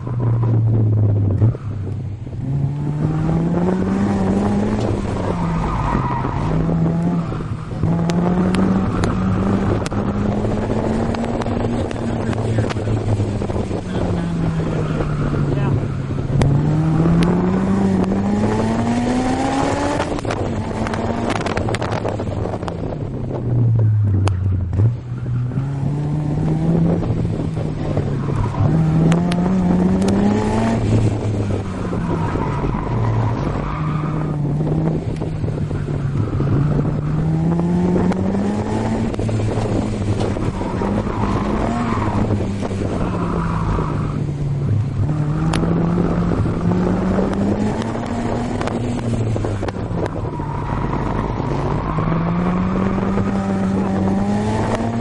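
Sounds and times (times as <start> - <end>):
car engine accelerating: 0.0 - 55.0
wind and road noise: 0.0 - 55.0.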